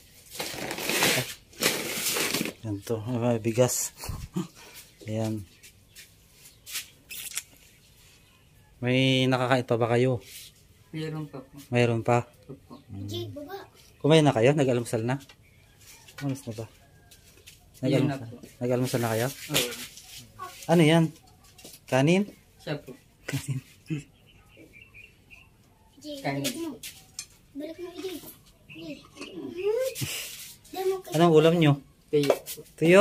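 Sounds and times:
plastic bag crinkling: 0:00.3 - 0:02.6.

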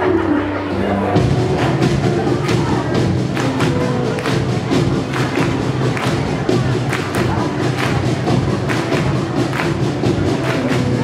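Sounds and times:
keyboard bass: 0:00.0 - 0:11.0
drum kit steady beat: 0:01.2 - 0:11.0.

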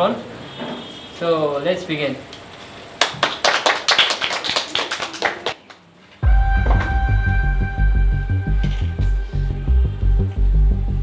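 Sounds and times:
music with deep bass: 0:06.2 - 0:11.0.

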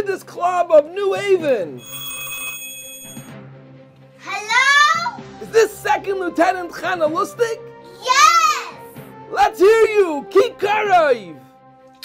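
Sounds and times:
telephone bell ringing: 0:01.8 - 0:03.4.

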